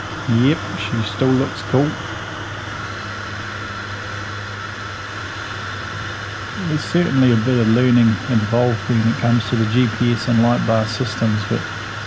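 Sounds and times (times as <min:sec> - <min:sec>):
airflow: 0:00.0 - 0:12.0
turboprop engine drone: 0:00.0 - 0:12.0.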